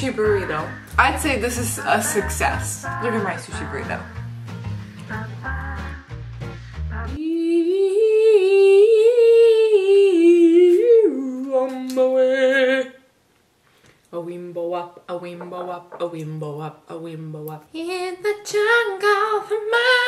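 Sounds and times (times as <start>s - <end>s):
music with steady beat: 0.0s - 7.2s.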